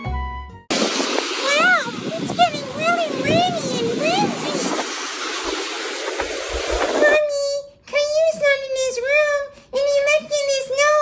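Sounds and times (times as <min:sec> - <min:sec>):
wind and rain rushing: 0:00.7 - 0:07.2
held voice: 0:01.4 - 0:04.8, 0:06.9 - 0:11.0
person speaking: 0:01.4 - 0:05.0, 0:06.8 - 0:11.0.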